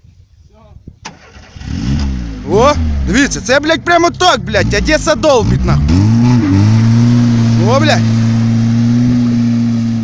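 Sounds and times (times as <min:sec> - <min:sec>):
car engine cranking and starting: 0:01.0 - 0:10.0.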